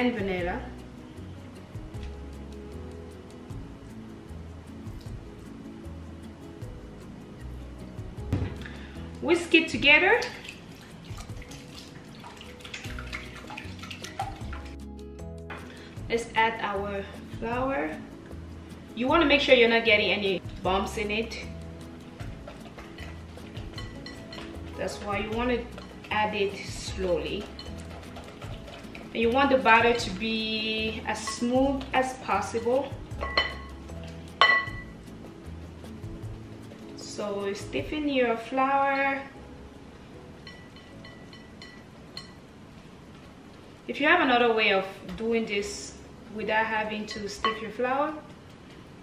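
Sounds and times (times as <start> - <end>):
liquid sloshing: 10.3 - 14.8, 27.0 - 30.2
metal utensils clinking glass bowl: 22.4 - 30.2, 33.2 - 34.9, 40.4 - 42.4
whisk clicking against glass bowl: 26.9 - 30.2.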